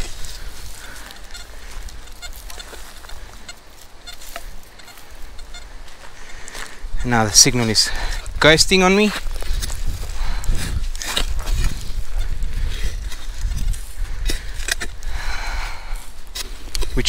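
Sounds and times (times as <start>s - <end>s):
wind rumble on microphone: 6.8s - 17.0s.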